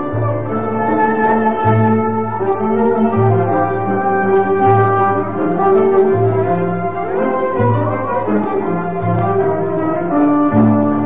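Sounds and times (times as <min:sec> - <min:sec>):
ensemble playing held melody: 0:00.0 - 0:11.0.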